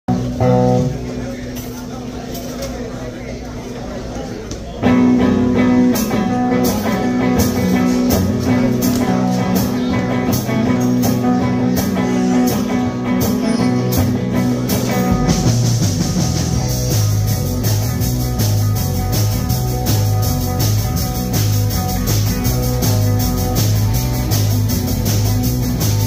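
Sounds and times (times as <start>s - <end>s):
rock band playing: 0.1s - 1.8s, 4.8s - 26.0s
drums and cymbals: 4.9s - 26.0s.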